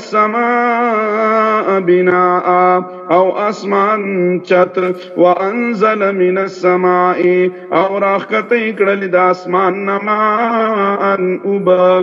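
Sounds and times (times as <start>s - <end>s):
man chanting recitation: 0.0s - 12.0s.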